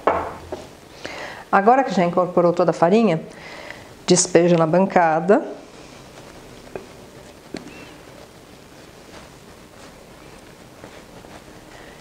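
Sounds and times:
glass bowl knocking on countertop: 0.0 - 0.4.

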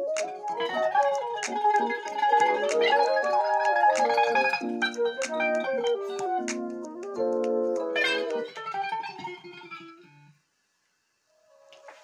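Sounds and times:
electric guitar chords: 0.0 - 10.3.

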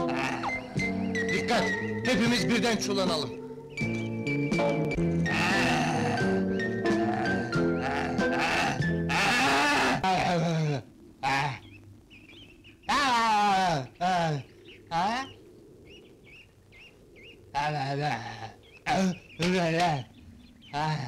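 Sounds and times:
film score music: 0.0 - 9.5
faint bird chirps: 0.1 - 21.0.

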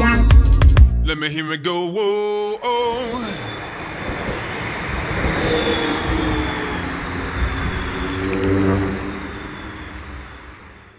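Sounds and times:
tram rumbling past: 3.0 - 10.9.

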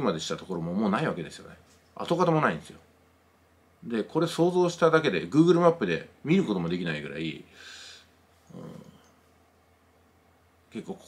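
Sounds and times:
man murmuring: 8.5 - 9.0.

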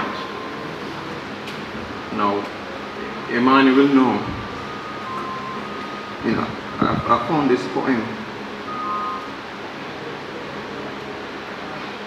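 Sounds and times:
steady background hiss: 0.0 - 12.0
high steady tones: 3.7 - 10.2.

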